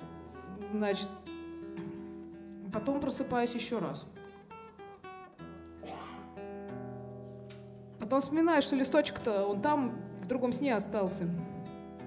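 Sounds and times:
acoustic guitar played softly: 0:00.0 - 0:12.0.

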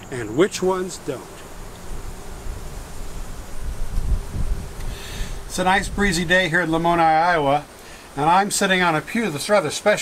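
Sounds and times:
wind buffeting microphone: 0:01.8 - 0:07.6.

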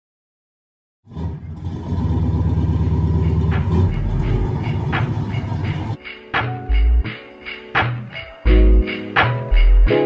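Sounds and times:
car engine idling: 0:01.1 - 0:06.0.

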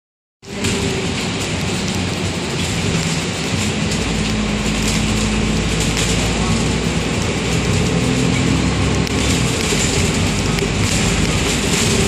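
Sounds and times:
bus engine drone: 0:00.4 - 0:12.0
deeper rumble: 0:00.4 - 0:12.0
road rumble: 0:00.4 - 0:12.0.

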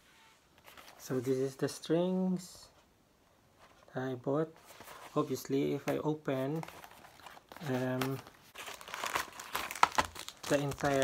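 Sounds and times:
plastic wrapping crinkling: 0:06.6 - 0:11.0.

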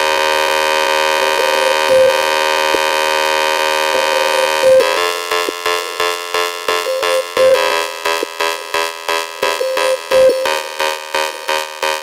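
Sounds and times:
buzzing horn-like synth chord: 0:00.0 - 0:12.0.

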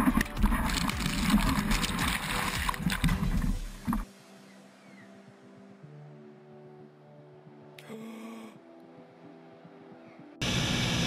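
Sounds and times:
whitewater rushing and splashing: 0:00.0 - 0:04.4
faint background music: 0:00.0 - 0:10.4.

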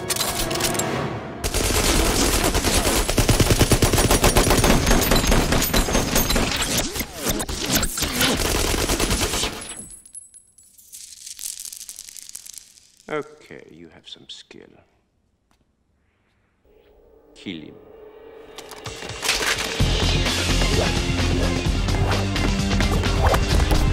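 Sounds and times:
submachine guns firing automatic bursts: 0:01.4 - 0:09.7.

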